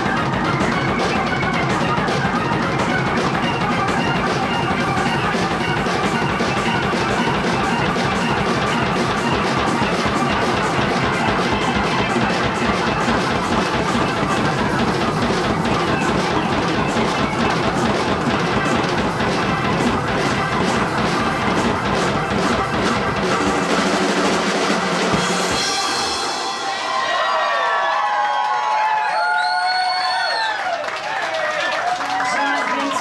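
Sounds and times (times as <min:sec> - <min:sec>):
organ: 0:00.0 - 0:26.8
live band playing: 0:00.0 - 0:28.1
fast drum kit hits: 0:00.0 - 0:28.2.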